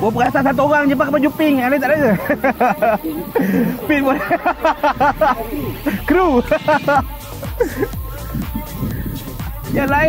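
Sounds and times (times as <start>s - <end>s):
person talking: 0.0s - 7.0s, 9.6s - 10.0s
low wind rumble: 8.0s - 10.0s.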